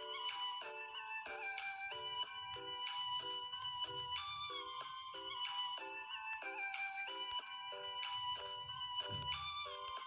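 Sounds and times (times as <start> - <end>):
bright melody of short repeated notes: 0.0 - 10.0.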